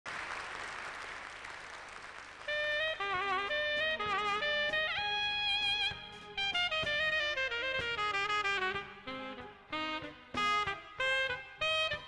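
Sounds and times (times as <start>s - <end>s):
audience applauding: 0.1s - 2.9s.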